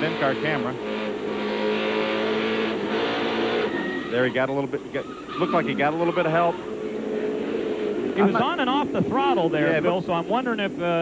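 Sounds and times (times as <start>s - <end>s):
race car engine running hard: 0.0s - 11.0s.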